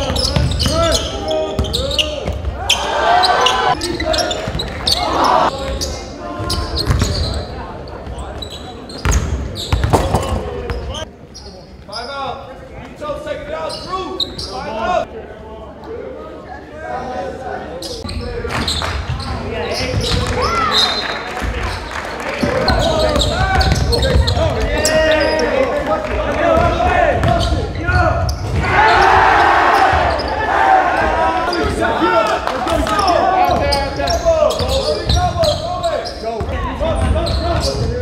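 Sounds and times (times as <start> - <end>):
sneakers squeaking: 0.0 - 12.5, 13.5 - 15.0, 17.8 - 25.8, 26.6 - 38.0.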